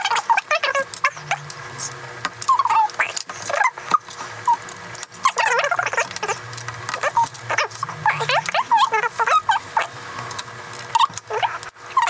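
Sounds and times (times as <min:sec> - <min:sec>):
sped-up high-pitched chatter: 0:00.0 - 0:04.6, 0:05.2 - 0:06.4, 0:07.0 - 0:10.0.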